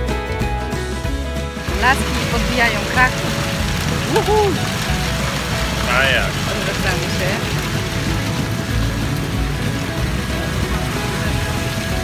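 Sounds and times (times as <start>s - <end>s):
music: 0.0s - 12.0s
low rumble: 1.2s - 12.0s
outdoor background noise: 1.5s - 12.0s.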